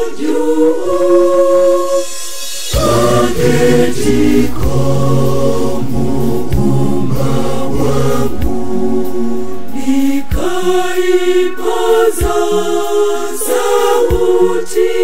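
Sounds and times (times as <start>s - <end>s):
choir singing a hymn: 0.0s - 15.0s
deep bass: 2.8s - 10.6s.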